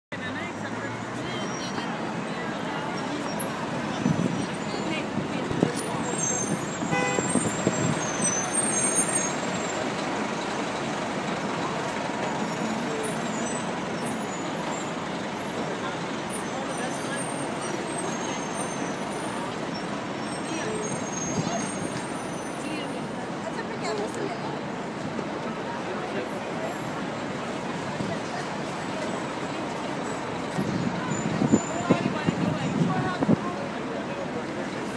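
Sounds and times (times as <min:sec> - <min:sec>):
traffic noise: 0:00.0 - 0:34.9
crowd voices: 0:00.1 - 0:34.9.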